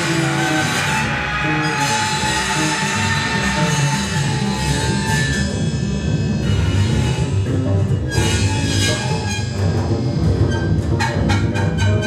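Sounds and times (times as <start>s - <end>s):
double bass notes: 0.0s - 12.0s.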